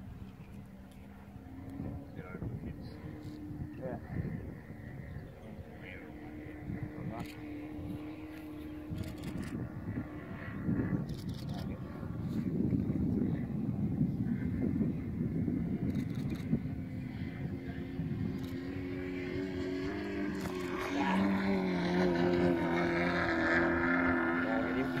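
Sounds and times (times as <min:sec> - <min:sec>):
model aircraft engine droning: 0:00.0 - 0:25.0
wind rumbling on microphone: 0:00.0 - 0:25.0.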